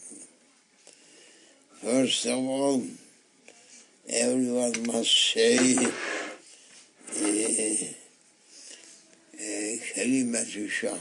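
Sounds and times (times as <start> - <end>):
elderly man speaking: 1.8 - 3.0, 4.0 - 6.2, 7.1 - 8.1, 9.4 - 11.0.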